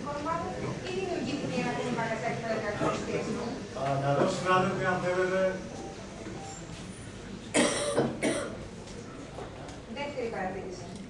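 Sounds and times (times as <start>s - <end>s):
person coughing: 7.5s - 8.6s.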